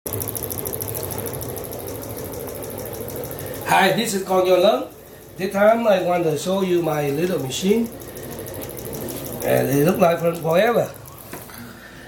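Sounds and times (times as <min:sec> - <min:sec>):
pulse motor fast even ticking: 0:00.0 - 0:11.7.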